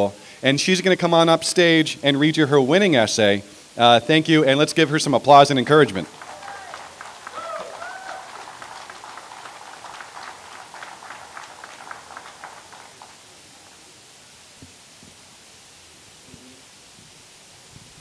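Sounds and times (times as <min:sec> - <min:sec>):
audience applauding: 0:05.4 - 0:13.8.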